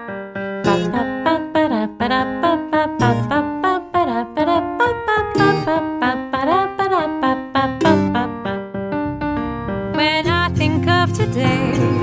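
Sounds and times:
held low piano chord: 0:00.0 - 0:02.2, 0:06.9 - 0:12.0
piano run of notes: 0:00.0 - 0:12.0.

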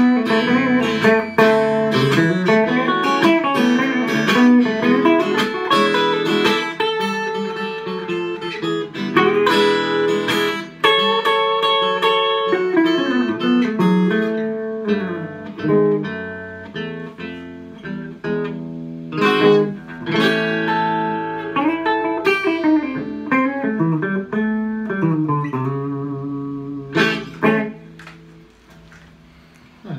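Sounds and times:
blues guitars playing: 0:00.0 - 0:29.9.

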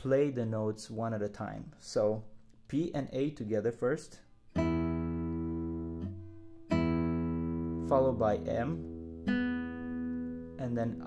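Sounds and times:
classical guitar plucked notes: 0:04.5 - 0:11.0.

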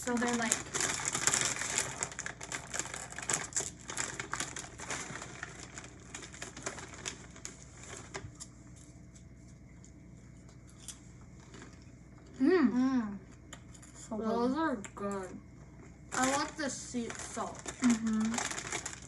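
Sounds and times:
plastic snack bag crinkling: 0:00.0 - 0:09.9, 0:10.8 - 0:12.4, 0:16.1 - 0:19.0.

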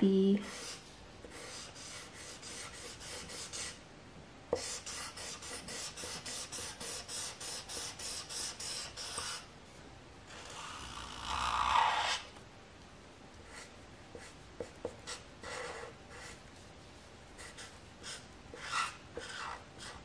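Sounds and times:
marker scribbling on paper: 0:00.4 - 0:03.8, 0:04.6 - 0:09.4, 0:13.5 - 0:16.4, 0:17.4 - 0:20.0.

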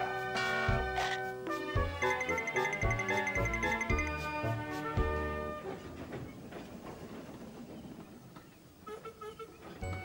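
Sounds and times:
musical notes: 0:01.4 - 0:05.7
small locomotive rattling on track: 0:02.0 - 0:10.0.

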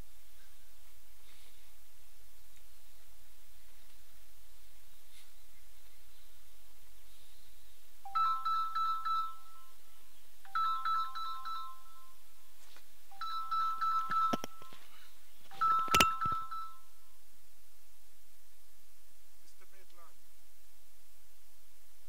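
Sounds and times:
mobile phone ringtone: 0:08.1 - 0:09.8, 0:10.5 - 0:12.2, 0:13.1 - 0:14.9, 0:15.5 - 0:17.1.

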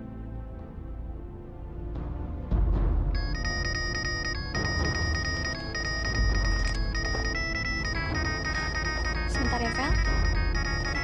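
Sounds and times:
dramatic music with low boom: 0:00.0 - 0:11.0
mobile phone ringtone beeping: 0:03.2 - 0:11.0.

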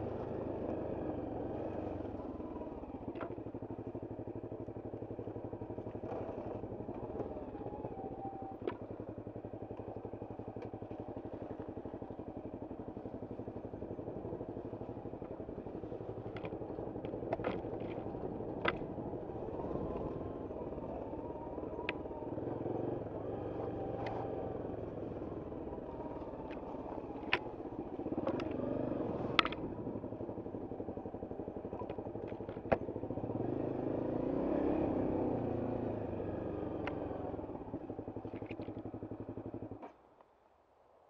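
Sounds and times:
motorcycle engine revving: 0:00.0 - 0:39.9
sharp clicks and knocks: 0:16.3 - 0:18.0, 0:18.6 - 0:18.9, 0:29.3 - 0:29.6.

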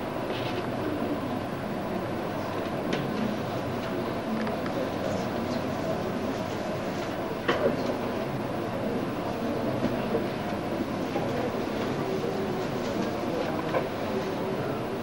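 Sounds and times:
room noise: 0:00.0 - 0:15.0.

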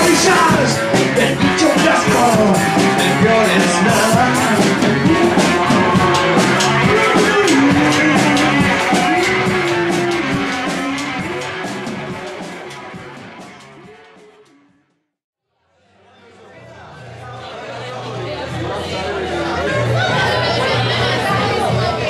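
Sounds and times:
rock band playing live: 0:00.0 - 0:14.5.

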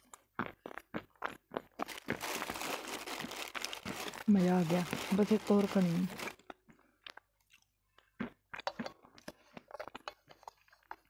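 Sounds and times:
crunchy food being chewed: 0:00.0 - 0:11.0.

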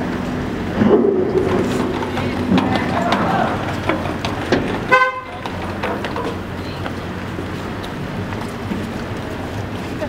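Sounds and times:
low engine hum: 0:00.0 - 0:10.0
footsteps on steel ramp: 0:00.8 - 0:10.0.

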